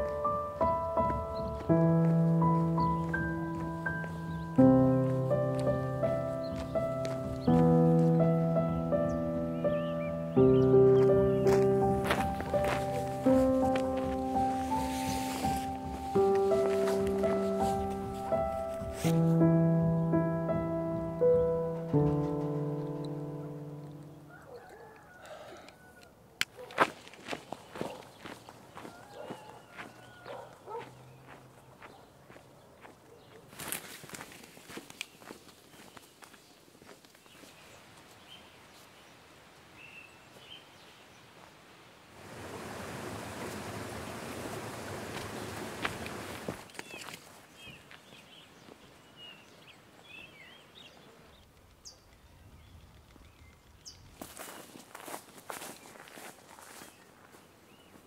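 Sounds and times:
footsteps on dirt trail: 0.0 - 8.4, 10.5 - 19.4, 26.6 - 38.2, 45.0 - 51.1, 52.7 - 58.0
faint birds chirping: 0.0 - 26.7, 27.5 - 41.6, 46.7 - 58.0.

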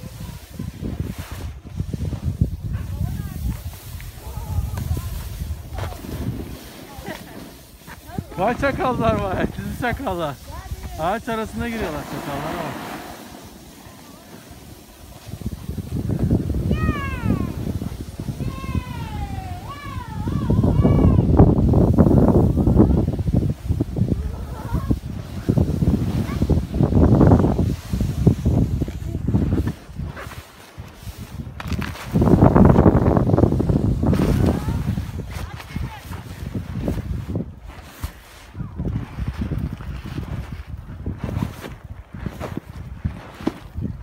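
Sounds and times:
skis sliding over snow: 0.0 - 44.0.

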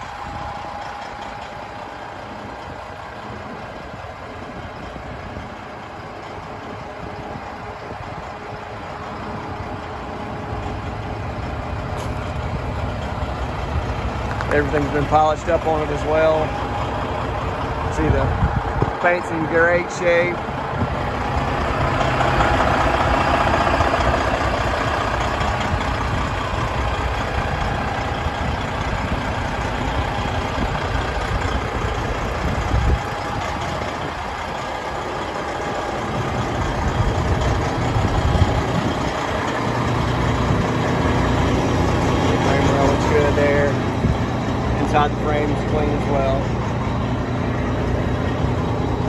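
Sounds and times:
diesel engine idling: 0.0 - 49.0.

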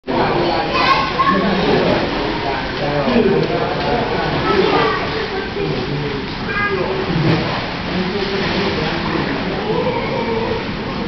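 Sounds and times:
children playing: 0.1 - 11.0
water splashing: 0.1 - 11.0.

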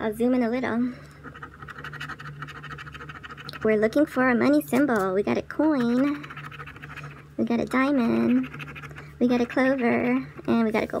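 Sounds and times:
coin scratching lottery ticket: 1.2 - 3.8, 5.7 - 7.2, 7.9 - 10.3.

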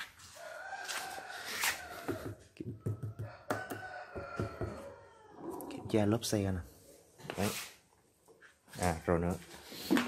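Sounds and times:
rooster crowing: 0.2 - 5.6.

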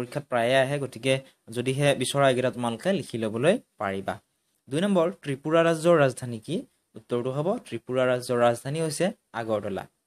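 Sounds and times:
person narrating: 0.0 - 10.0.

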